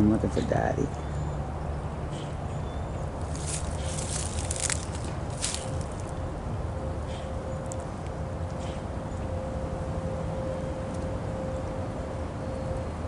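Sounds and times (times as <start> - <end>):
steady low rumble: 3.0 - 12.4
dry leaves and twigs crackling: 3.2 - 6.2.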